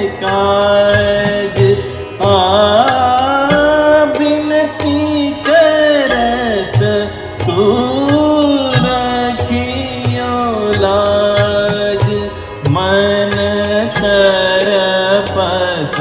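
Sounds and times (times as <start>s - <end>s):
gliding melodic vocal line: 0.0s - 16.0s
low rhythmic accompaniment: 0.0s - 16.0s.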